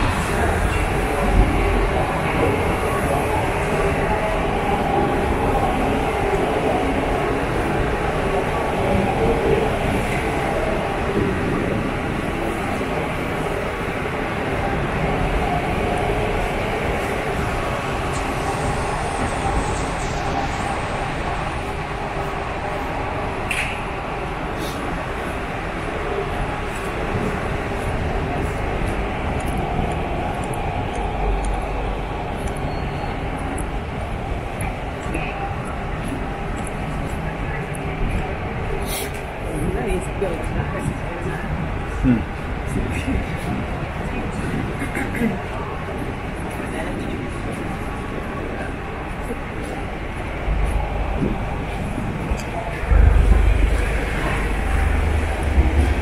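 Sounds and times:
city traffic rumble: 0:00.0 - 0:56.0.

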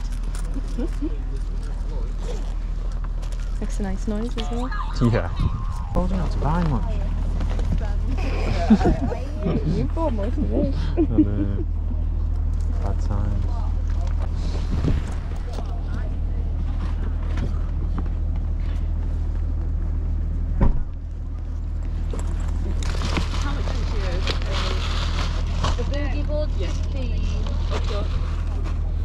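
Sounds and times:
low rumble: 0:00.0 - 0:29.0
people talking: 0:03.6 - 0:12.0, 0:25.7 - 0:28.2.

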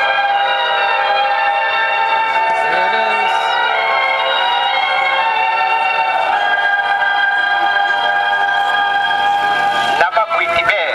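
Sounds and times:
held orchestral chord over loudspeaker: 0:00.0 - 0:10.7.

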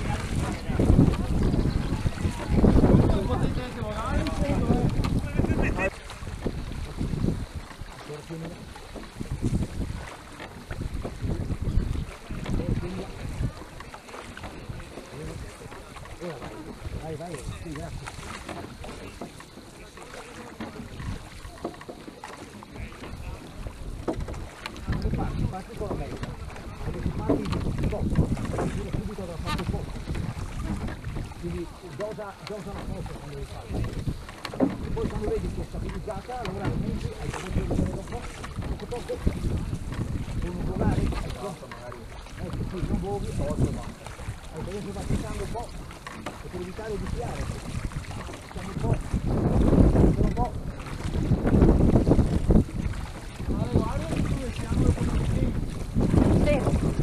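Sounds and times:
oars rowing boat: 0:00.0 - 0:57.0
wind buffeting microphone: 0:00.0 - 0:57.0.

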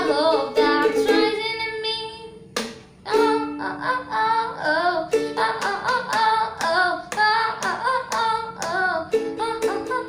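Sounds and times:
girl singing: 0:00.0 - 0:10.0
ukulele strumming: 0:00.0 - 0:10.0.

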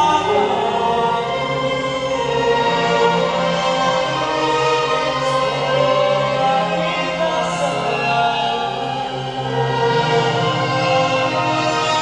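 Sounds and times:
group of singers: 0:00.0 - 0:12.0
orchestra strings: 0:00.0 - 0:12.0.

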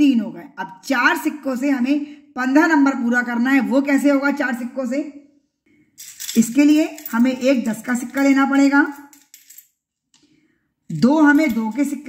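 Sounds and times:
coins clinking in a bowl: 0:06.0 - 0:09.7.

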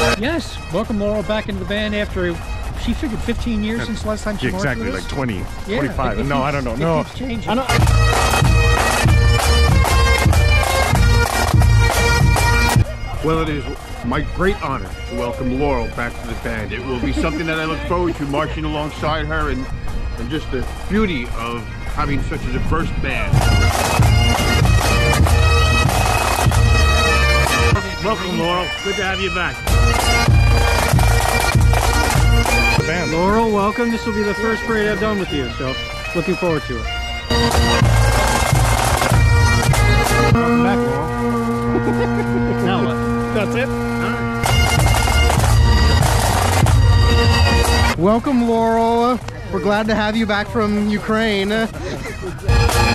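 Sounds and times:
bagpipes playing: 0:00.0 - 0:52.9
drum strokes: 0:02.6 - 0:12.9, 0:23.2 - 0:34.2, 0:37.3 - 0:48.5, 0:52.4 - 0:52.9.

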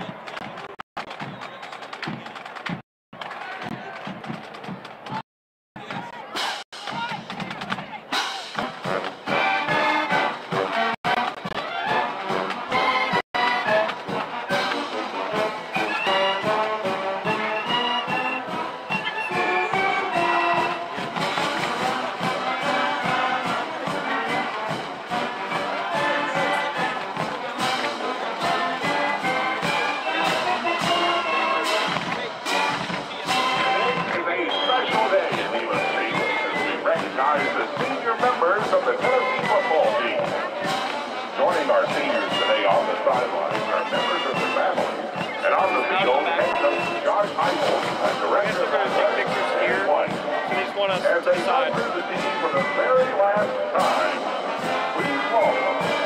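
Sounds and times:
drum hits: 0:00.0 - 0:05.2, 0:05.8 - 0:15.5, 0:19.6 - 0:34.2
brass and saxophones: 0:06.2 - 0:56.0.

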